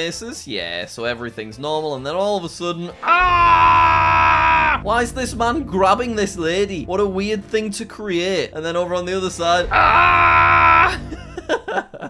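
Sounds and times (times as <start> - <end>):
held musical chord sting: 4.7 - 11.6
man laughing: 9.7 - 12.0.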